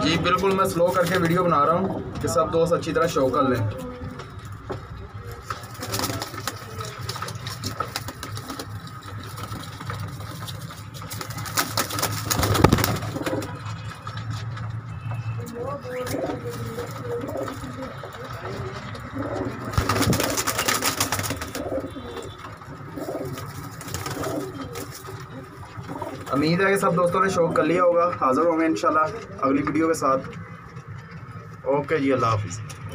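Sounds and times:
pigeons cooing: 5.2s - 14.5s, 15.5s - 29.3s
wingbeats flurry: 5.3s - 27.1s.

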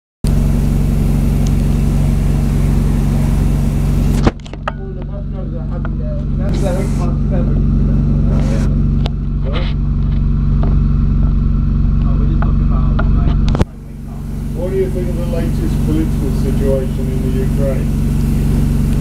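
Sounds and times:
loud hiss: 0.3s - 9.0s, 13.6s - 19.0s
bus engine idling: 0.3s - 19.0s
faint voices: 4.8s - 9.9s, 12.0s - 19.0s.

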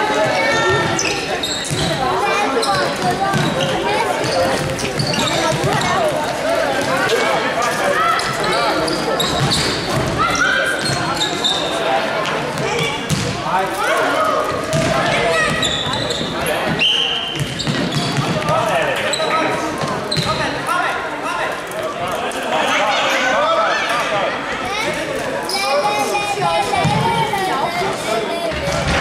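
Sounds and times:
ball kicked and bouncing: 13.1s - 13.4s.

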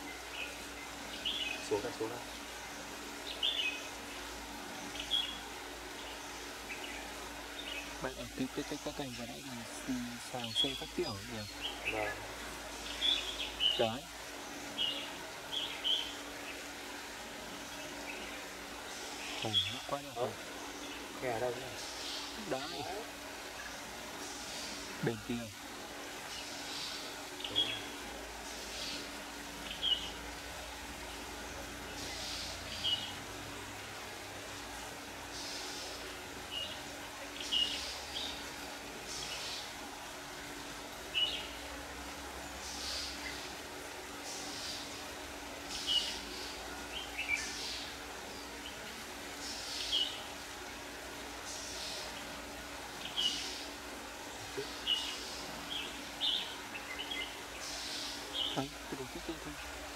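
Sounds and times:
soft bird calls: 0.0s - 16.8s, 17.5s - 25.6s, 26.2s - 30.5s, 51.4s - 59.9s
bulbuls chirping: 0.0s - 16.9s, 17.5s - 25.6s, 26.2s - 31.0s, 51.5s - 59.9s.

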